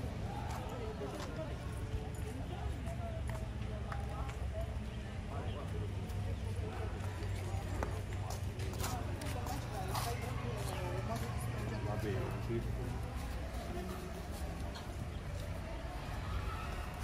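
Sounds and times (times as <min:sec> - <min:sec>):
indistinct chatter of voices: 0:00.0 - 0:17.0.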